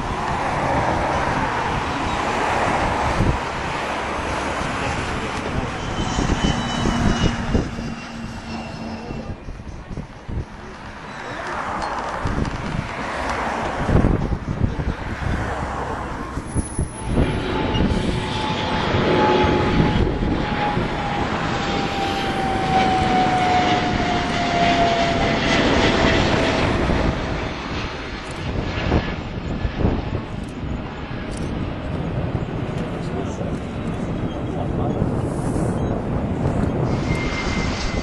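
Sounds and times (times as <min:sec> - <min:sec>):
jet engine whine sliding down: 0:00.0 - 0:38.0
jet engines rumbling: 0:00.0 - 0:38.0.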